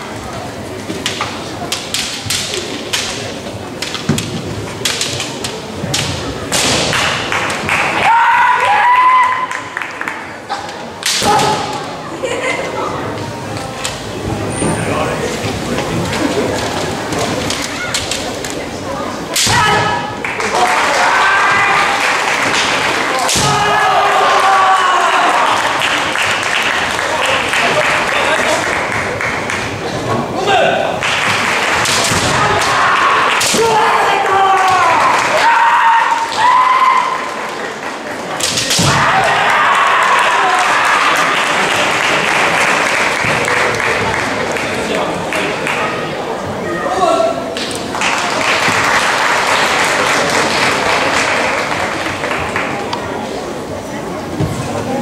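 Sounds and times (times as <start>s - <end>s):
echoing gymnasium hubbub: 0.0s - 55.0s
bamboo swords clacking: 0.8s - 7.6s, 10.5s - 11.9s, 16.6s - 18.6s, 19.3s - 20.1s, 22.5s - 23.9s, 31.3s - 34.0s, 38.3s - 39.4s
bamboo sword strike crack: 5.9s - 7.2s, 11.0s - 11.8s, 19.3s - 19.9s
fencers shouting: 6.9s - 9.6s, 19.3s - 26.0s, 31.8s - 37.4s, 38.5s - 41.4s.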